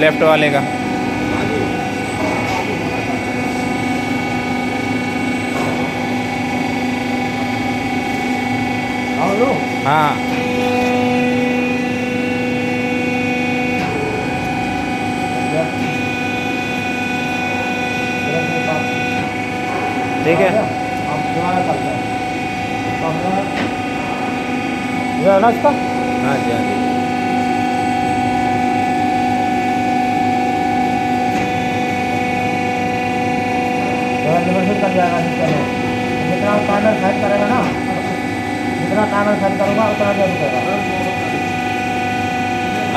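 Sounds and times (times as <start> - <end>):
hydraulic pump humming: 0.0 - 42.9.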